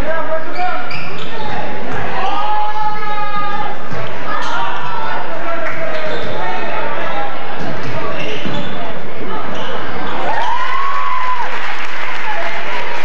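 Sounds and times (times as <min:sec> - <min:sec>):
spectators' overlapping voices: 0:00.0 - 0:13.0.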